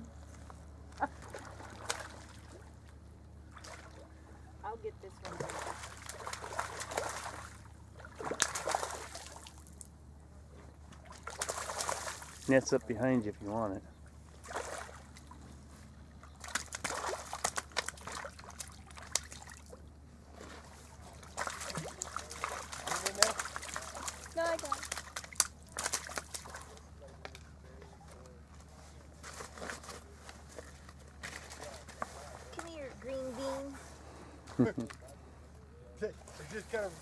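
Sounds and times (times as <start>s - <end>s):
fish splashing in shallow water: 1.0s - 4.2s, 5.2s - 10.0s, 10.8s - 12.6s, 14.1s - 27.5s, 29.1s - 32.6s.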